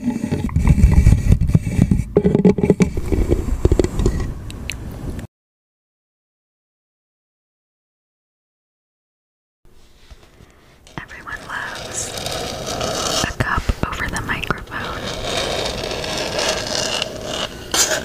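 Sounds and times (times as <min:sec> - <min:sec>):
person whispering: 0:10.9 - 0:12.2, 0:13.2 - 0:15.2.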